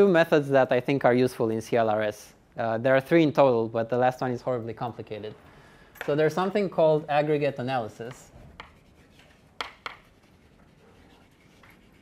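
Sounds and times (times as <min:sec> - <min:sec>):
chalk scratching on blackboard: 0:08.1 - 0:12.0.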